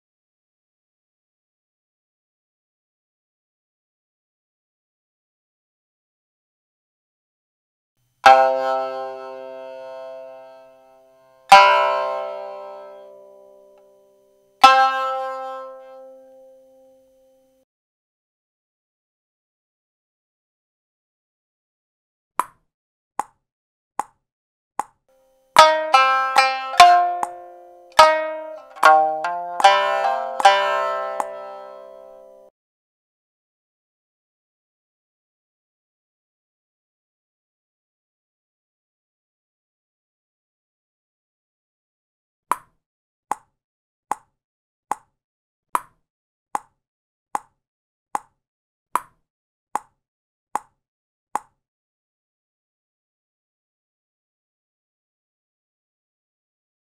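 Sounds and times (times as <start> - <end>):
shamisen struck note: 8.2 - 14.0, 14.6 - 17.4, 25.6 - 32.5
metronome clicking: 25.6 - 32.5.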